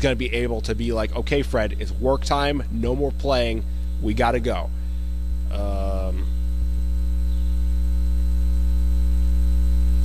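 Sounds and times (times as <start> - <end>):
buzzy electrical mains hum: 0.0 - 10.0.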